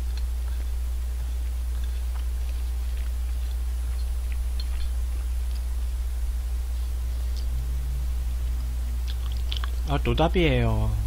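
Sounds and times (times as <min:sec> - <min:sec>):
man chewing: 0:00.0 - 0:10.0
steady low hum: 0:00.0 - 0:11.0
soft mouth clicks: 0:01.4 - 0:05.7, 0:09.0 - 0:09.9
man speaking: 0:09.8 - 0:11.0.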